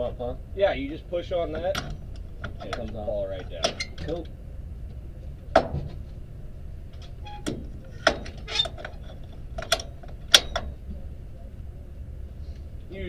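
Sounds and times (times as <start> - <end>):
low steady rumble: 0.0 - 13.0
metallic clicks and clanks: 1.3 - 4.4, 6.9 - 11.0.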